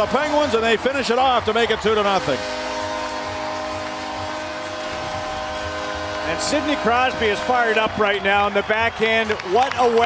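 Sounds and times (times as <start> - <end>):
arena goal horn: 0.0 - 9.2
crowd cheering: 0.0 - 10.0.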